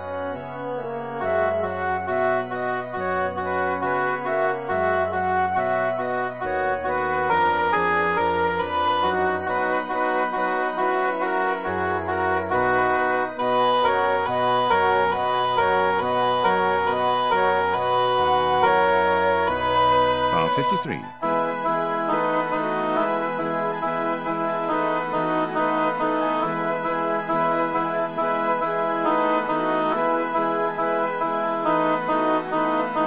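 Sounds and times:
organ: 0.0 - 33.0
piano accompaniment: 0.0 - 33.0
electronic oboe sustained notes: 1.2 - 33.0.

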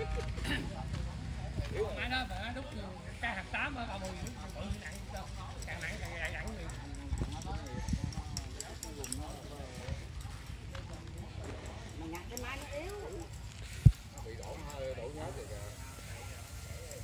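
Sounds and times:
indistinct talking voices: 0.0 - 17.0.

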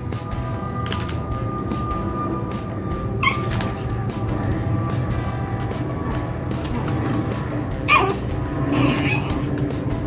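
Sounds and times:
background music: 0.0 - 10.0
puppy whimpering: 3.2 - 3.8, 7.9 - 9.5.

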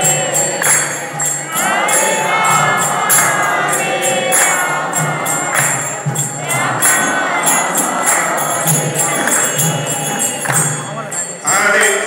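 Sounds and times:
group of voices chanting: 0.0 - 10.4
small hand cymbals struck: 0.0 - 12.0.

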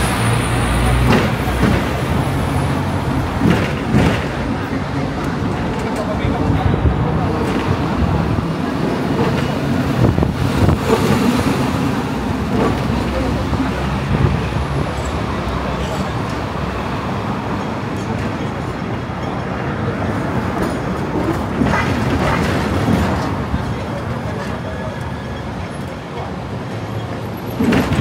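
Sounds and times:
electric tram running: 0.0 - 28.0
street traffic: 0.0 - 28.0.

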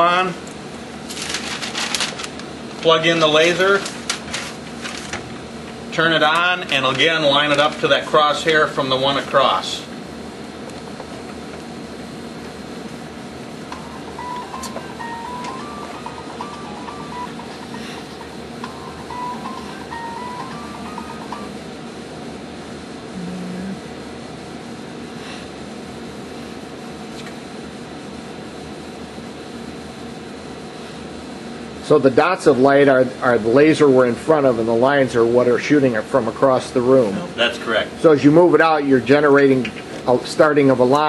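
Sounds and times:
room noise: 0.0 - 29.4
faint tune of stepped notes: 13.7 - 21.6
brief low tone: 23.2 - 23.8.

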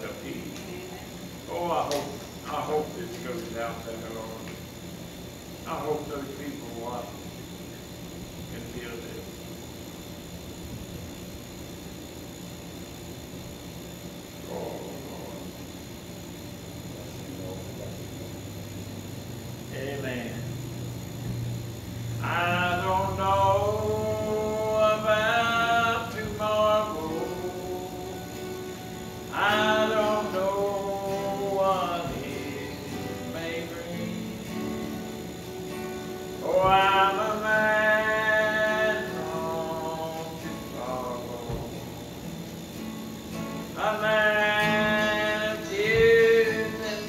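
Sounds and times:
steady low hum: 0.0 - 47.0
man singing a hymn: 22.2 - 28.6, 29.3 - 34.8, 36.4 - 42.1, 43.8 - 47.0.

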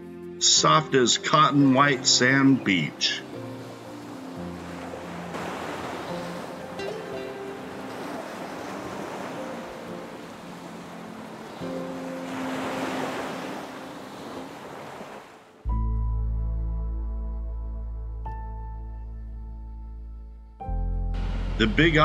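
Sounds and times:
soft background music: 0.0 - 14.8, 15.7 - 22.0
ocean surf on beach: 0.6 - 15.6.

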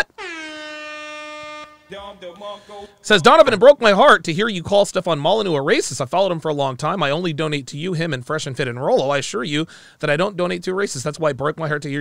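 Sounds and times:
air horn blast: 0.0 - 3.0.

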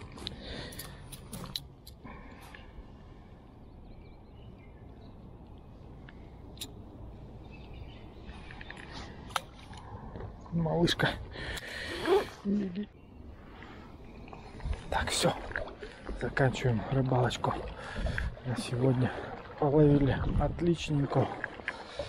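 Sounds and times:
wind buffeting microphone: 17.5 - 21.2.

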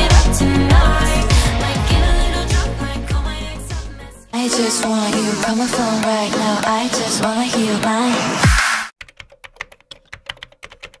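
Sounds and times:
keyboard typing: 9.0 - 11.0.

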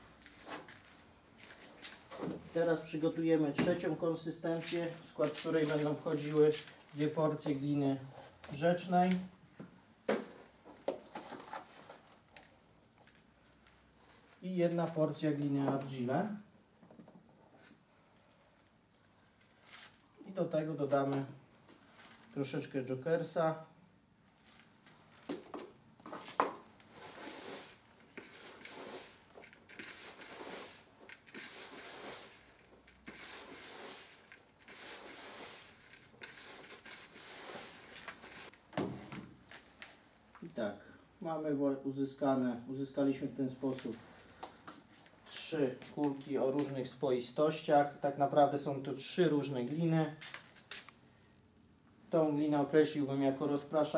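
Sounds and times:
wet clay scraping and squelching: 26.1 - 38.6.

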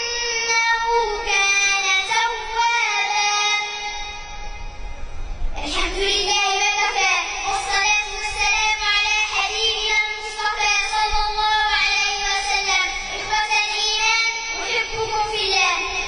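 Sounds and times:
girl chanting into microphone: 0.0 - 4.0, 5.6 - 16.0.

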